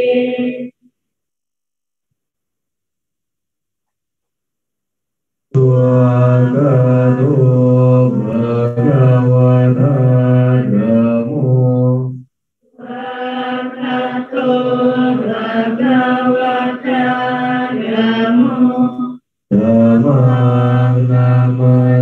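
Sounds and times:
devotional chanting: 0.0 - 0.8, 5.5 - 22.0.

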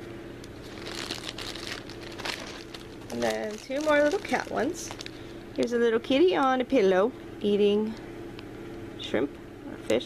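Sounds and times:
plastic packaging crinkling: 0.4 - 6.2.

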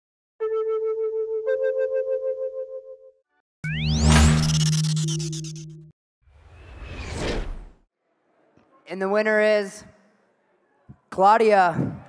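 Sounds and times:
whoosh: 6.3 - 7.8.

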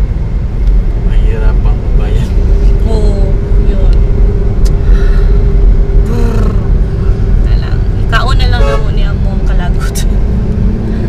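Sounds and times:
car engine and road noise: 0.0 - 11.0
constant hum: 0.0 - 11.0.

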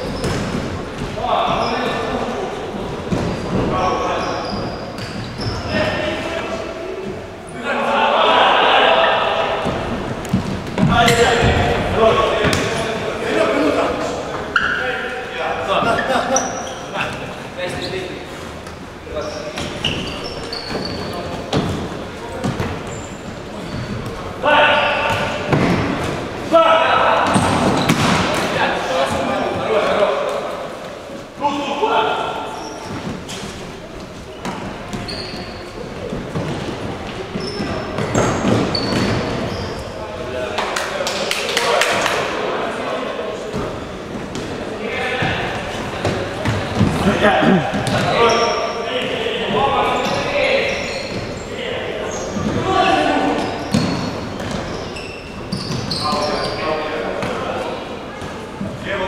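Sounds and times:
shoes squeaking on floor: 0.0 - 2.1, 3.1 - 6.2, 14.4 - 15.2, 15.8 - 26.2, 32.4 - 40.0, 46.3 - 57.0
players shouting: 7.6 - 9.9, 46.9 - 48.1.

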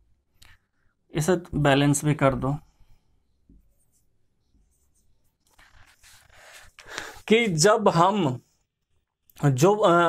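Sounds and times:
marker writing on a whiteboard: 3.5 - 7.1.

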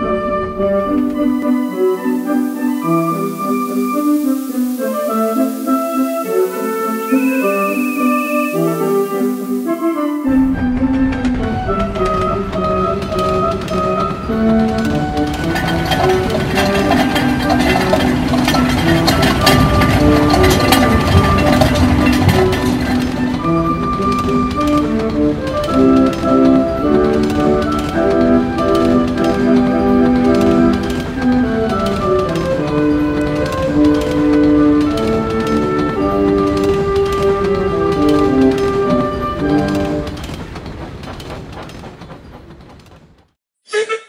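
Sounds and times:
percussion: 2.2 - 42.2.

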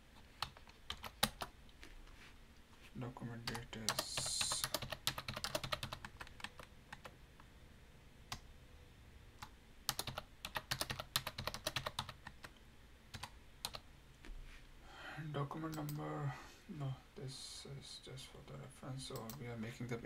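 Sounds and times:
typing on computer keyboard: 0.4 - 1.5, 3.4 - 7.1, 9.4 - 12.5, 13.1 - 13.8.

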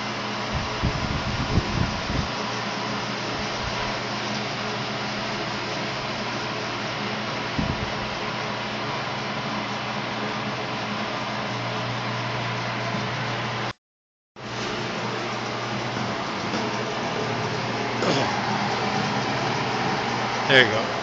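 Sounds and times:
food shredder motor whirring: 14.5 - 21.0.

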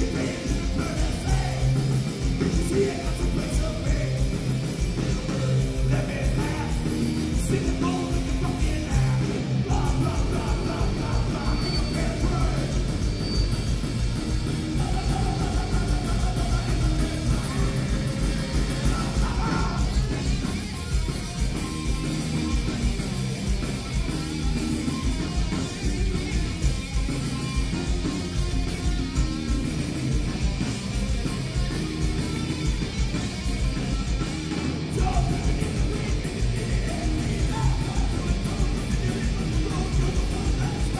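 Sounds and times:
bass guitar: 0.0 - 40.9
drum kit: 0.0 - 40.9
electric guitar: 0.0 - 40.9
rock band playing: 0.0 - 40.9.

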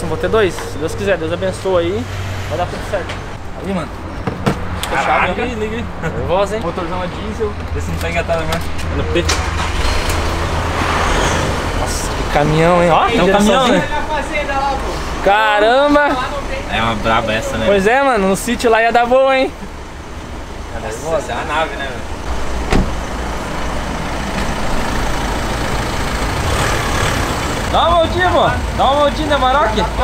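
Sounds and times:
diesel engine rumbling: 0.0 - 30.0.

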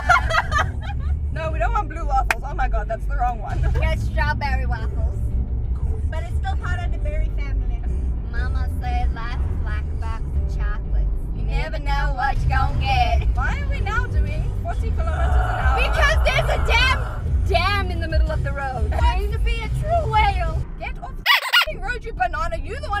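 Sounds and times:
car road and engine rumble: 0.0 - 23.0
women talking: 1.4 - 5.1, 6.1 - 23.0.

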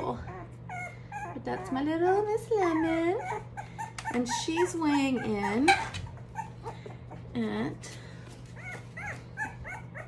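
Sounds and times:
puppy whimpering: 0.0 - 7.4, 8.4 - 10.0.

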